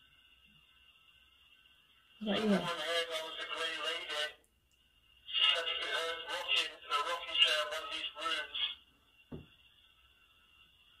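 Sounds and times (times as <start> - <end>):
thin high whine: 0.0 - 11.0
garbled radio-like voice fragments: 2.2 - 4.4, 5.3 - 8.8.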